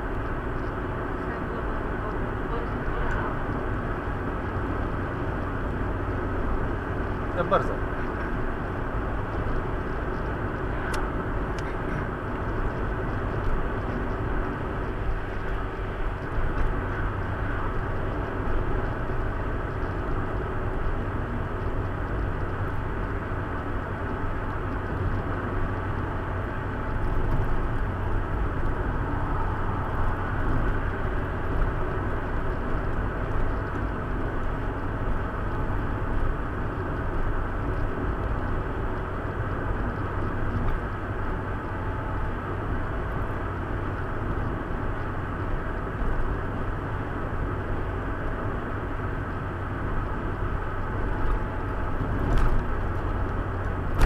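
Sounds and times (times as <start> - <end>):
car engine hum: 0.0 - 54.0.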